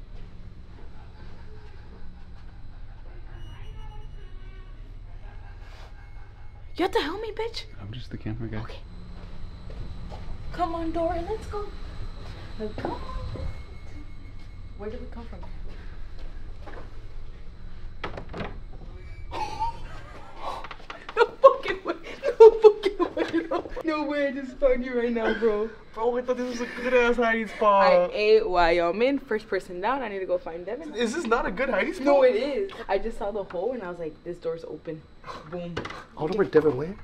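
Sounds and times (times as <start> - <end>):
faint ringing tone: 0.0 - 20.7
low hum of corridor: 0.0 - 37.0
door creak: 18.0 - 21.2.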